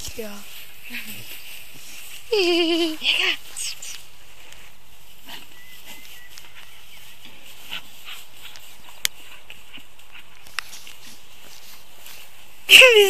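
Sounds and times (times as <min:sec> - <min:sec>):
grass rustling: 0:00.0 - 0:13.0.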